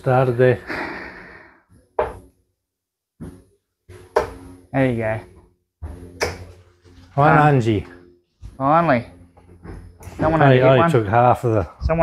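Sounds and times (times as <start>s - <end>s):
dart striking dartboard: 2.0s - 2.3s, 3.2s - 4.6s, 5.8s - 6.6s.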